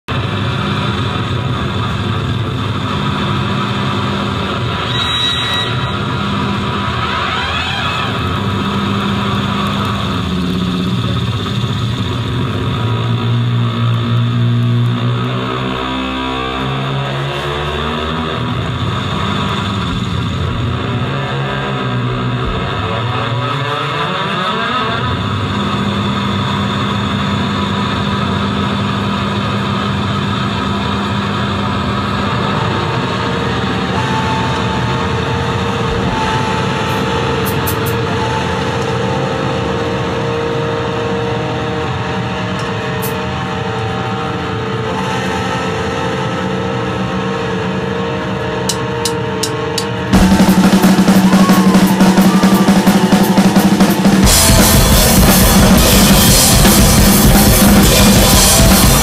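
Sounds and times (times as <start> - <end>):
distorted electric guitar drone: 0.0 - 59.0.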